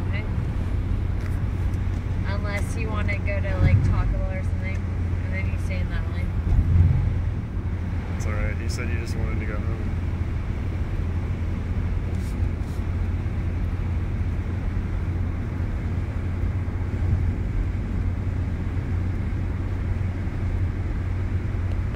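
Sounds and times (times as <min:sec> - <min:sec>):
car road and engine noise: 0:00.0 - 0:21.9.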